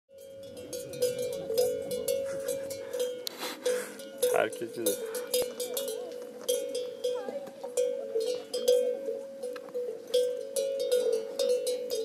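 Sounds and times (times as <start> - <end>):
cowbells clanking: 0.1 - 12.0.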